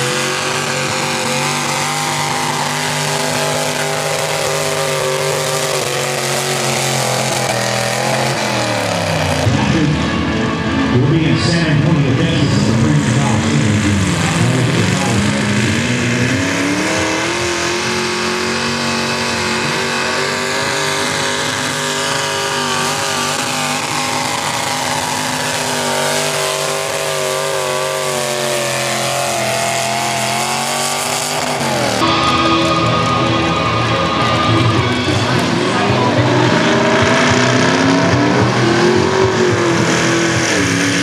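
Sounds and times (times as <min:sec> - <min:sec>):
tractor engine at full throttle: 0:00.0 - 0:41.0.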